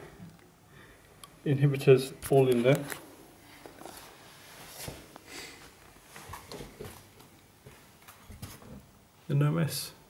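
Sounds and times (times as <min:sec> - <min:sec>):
soft handling knocks and rustles: 0:03.5 - 0:08.9.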